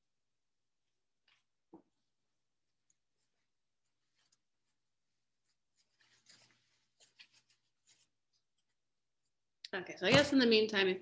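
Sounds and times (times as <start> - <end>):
faint rustling: 2.8 - 8.8.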